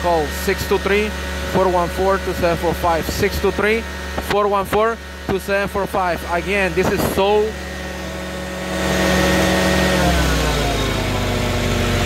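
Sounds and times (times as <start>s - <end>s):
carpet cleaning machine engine running: 0.0s - 12.0s.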